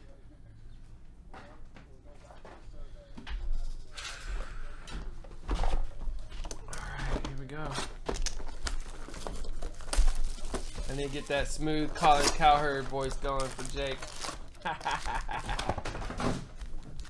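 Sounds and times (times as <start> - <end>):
plastic wrap and cardboard crinkling: 6.8 - 17.0
box being torn open: 13.4 - 17.0.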